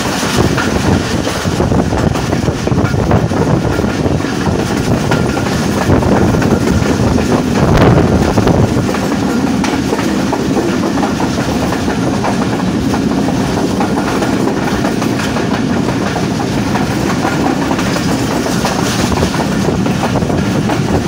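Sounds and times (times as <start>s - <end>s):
clickety-clack of rail joints: 0.0s - 21.0s
train wheels rumbling on rails: 0.0s - 21.0s.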